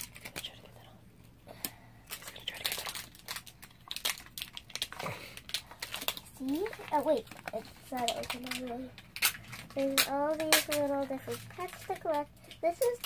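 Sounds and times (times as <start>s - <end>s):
paper crinkling and rustling: 2.1s - 13.0s.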